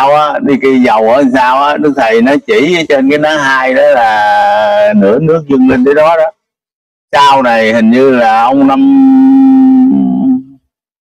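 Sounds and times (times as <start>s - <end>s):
man humming steadily: 8.5s - 10.7s.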